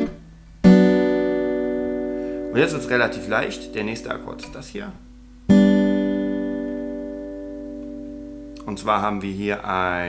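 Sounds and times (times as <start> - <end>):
acoustic guitar chord strummed: 0.0 - 9.3.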